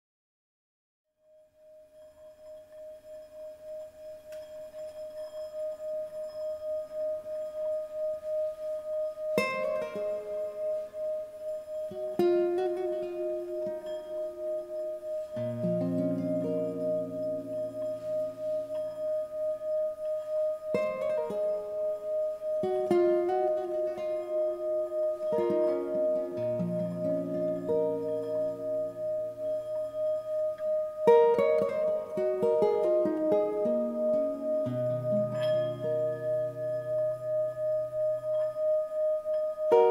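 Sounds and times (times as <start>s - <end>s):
singing bowl ringing tone: 1.2s - 39.9s
nylon-string guitar plucking: 5.6s - 39.9s.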